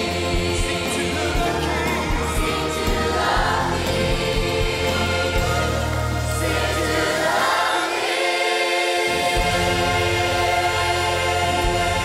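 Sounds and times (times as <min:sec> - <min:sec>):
choir singing gospel song: 0:00.0 - 0:12.0
instrumental accompaniment: 0:00.0 - 0:12.0.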